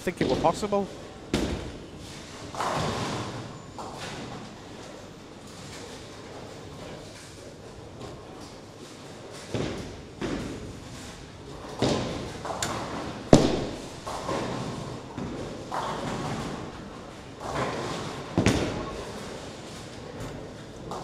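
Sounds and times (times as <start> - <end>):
bowling balls and pins crashing: 0.2 - 4.5, 11.6 - 16.8, 17.4 - 19.6.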